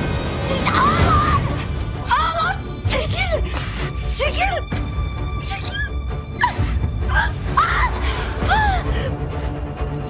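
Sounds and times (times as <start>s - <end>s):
dark dramatic music: 0.0s - 10.0s.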